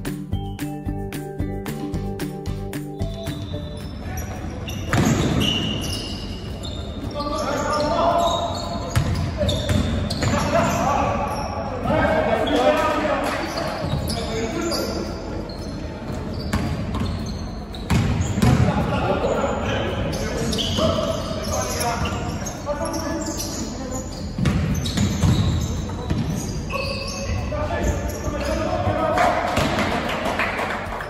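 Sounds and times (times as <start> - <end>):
sneaker squeaks: 2.4 - 18.8, 19.5 - 29.0
basketball bouncing on wooden court: 8.8 - 10.4, 17.8 - 18.7, 24.4 - 26.4.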